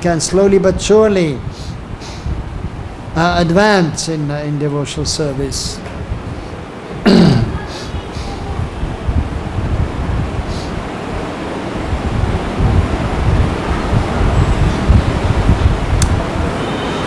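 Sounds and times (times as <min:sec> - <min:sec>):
air buffeting microphone: 0:00.0 - 0:17.0.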